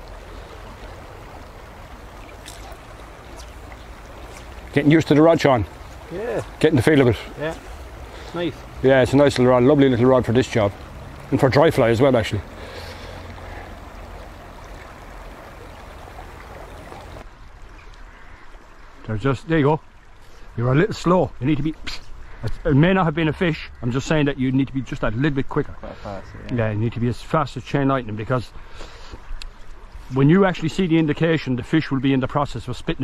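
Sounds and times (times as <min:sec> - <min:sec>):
river water flowing: 0:00.0 - 0:32.7.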